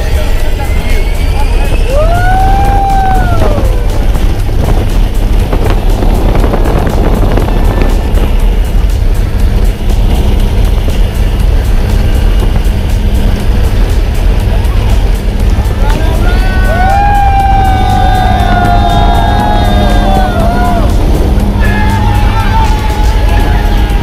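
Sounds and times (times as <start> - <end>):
plane engines running: 0.0 - 24.0
rushing wind: 0.0 - 24.0.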